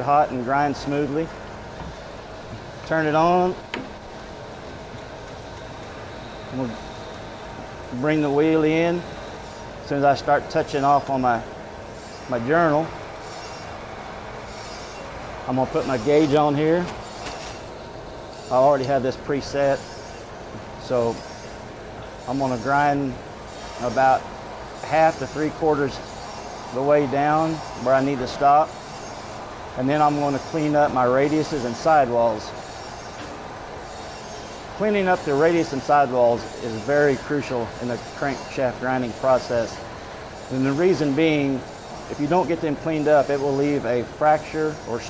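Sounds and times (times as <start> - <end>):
grinding wheel on crankshaft: 0.0 - 45.0.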